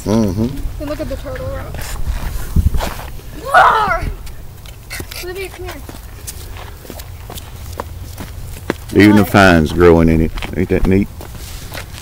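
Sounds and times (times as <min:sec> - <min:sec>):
footsteps on rock: 0:04.2 - 0:12.0.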